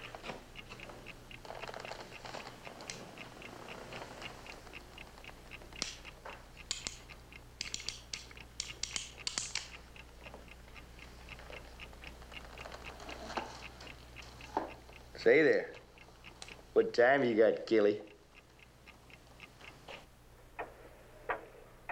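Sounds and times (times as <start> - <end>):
revolver metallic clicks: 0.0 - 12.7
clock ticking: 0.0 - 20.7.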